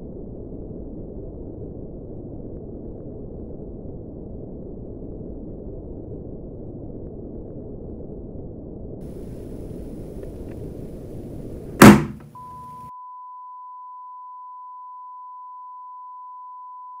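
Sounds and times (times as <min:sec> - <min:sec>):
steady high-pitched beep: 0:12.4 - 0:17.0.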